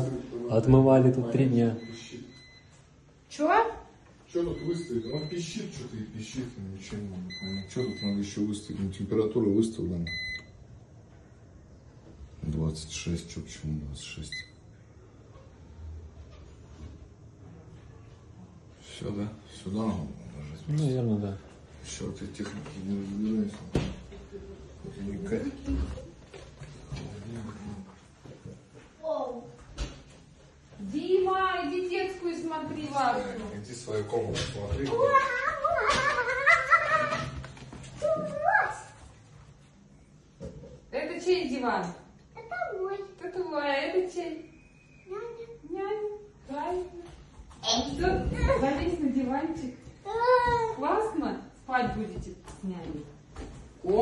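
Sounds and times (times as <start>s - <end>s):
freezer beeper tone: 1.4s - 2.7s, 4.4s - 5.7s, 10.0s - 10.6s.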